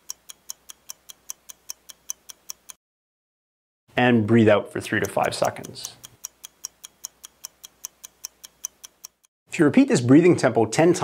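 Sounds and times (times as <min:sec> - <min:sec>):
stopwatch ticking: 0:00.0 - 0:02.8, 0:04.7 - 0:09.3.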